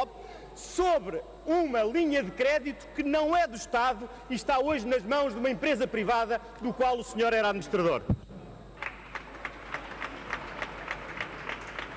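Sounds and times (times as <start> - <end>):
low background hum: 0.0 - 11.9
hands clapping: 8.8 - 11.9.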